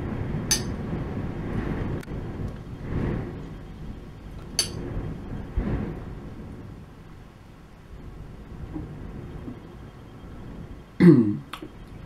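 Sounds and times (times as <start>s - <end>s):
low rumbling background noise: 0.0s - 12.0s.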